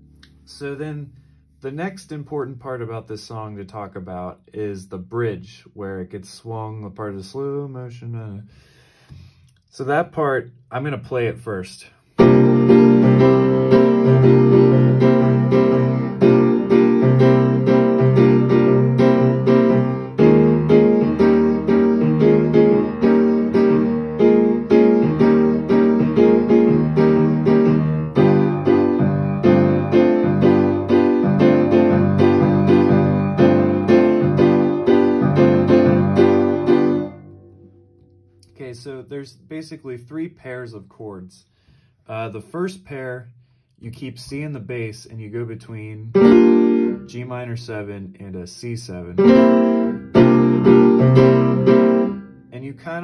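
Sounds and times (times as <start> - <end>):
piano playing swung chords: 12.2 - 38.5, 46.1 - 47.2, 49.2 - 52.5.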